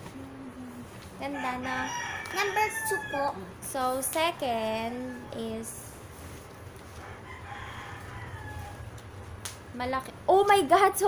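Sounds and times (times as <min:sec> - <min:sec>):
distant rooster crowing: 0:01.2 - 0:03.4, 0:04.8 - 0:05.7, 0:06.9 - 0:09.2.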